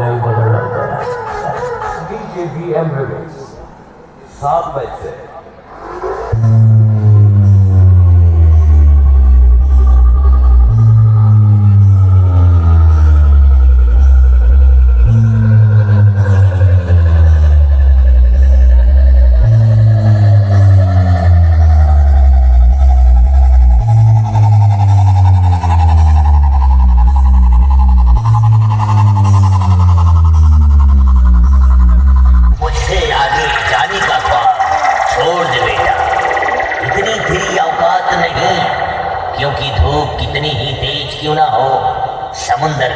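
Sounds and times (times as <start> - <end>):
bass-heavy electronic music: 0.0 - 3.6, 6.3 - 41.3
rising tone: 32.3 - 40.6.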